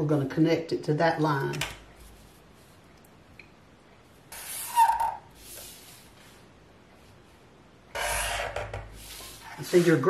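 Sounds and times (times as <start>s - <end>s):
marker scratching along ruler: 4.3s - 6.1s, 7.9s - 10.0s.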